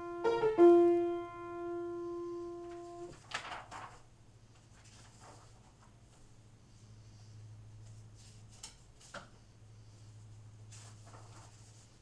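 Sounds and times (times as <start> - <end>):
rustling and scraping: 2.7 - 6.3, 7.8 - 12.0.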